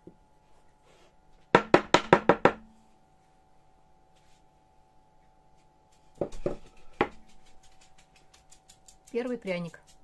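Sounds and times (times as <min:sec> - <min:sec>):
knocks on wooden mold: 0:01.5 - 0:02.6.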